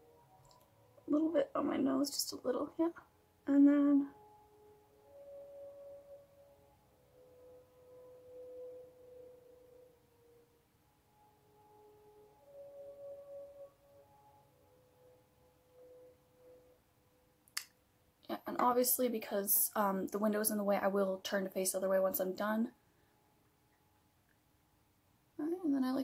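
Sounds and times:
faint slow melody of held tones: 0.0s - 26.0s.

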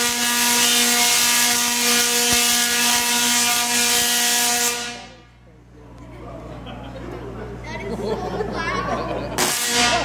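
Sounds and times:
tesla coil buzzing burst: 0.0s - 5.3s, 9.3s - 10.0s
audience murmuring: 5.0s - 10.0s.

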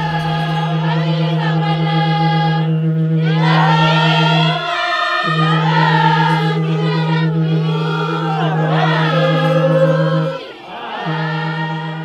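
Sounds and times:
low drone note: 0.0s - 12.0s
voices singing together: 0.0s - 12.0s.

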